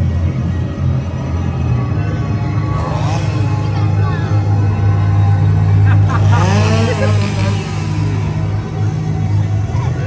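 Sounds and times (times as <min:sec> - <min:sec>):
low droning soundtrack: 0:00.0 - 0:10.0.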